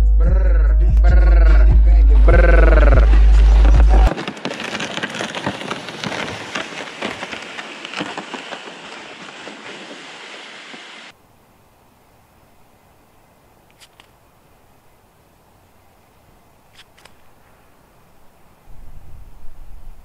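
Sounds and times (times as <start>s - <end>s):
hip-hop music with heavy bass: 0.0s - 4.1s
person rapping: 0.0s - 4.1s
boots crunching on icy snow: 2.3s - 11.1s
sleds dragged across ice: 2.3s - 11.1s.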